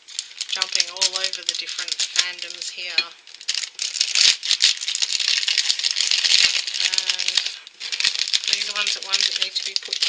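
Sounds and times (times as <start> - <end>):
foil bag crinkling: 0.0 - 10.0.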